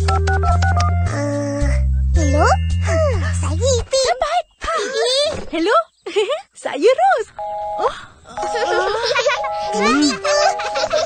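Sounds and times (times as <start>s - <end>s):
background music with bass line: 0.0s - 3.6s
telephone keypad beeps: 7.4s - 7.8s.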